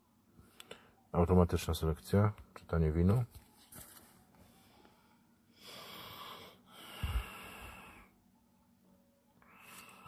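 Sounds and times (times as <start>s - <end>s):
person breathing: 4.4s - 8.2s, 9.4s - 10.0s.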